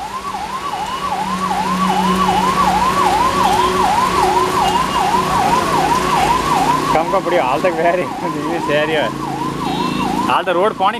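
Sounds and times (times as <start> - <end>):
siren wailing: 0.0 - 10.9.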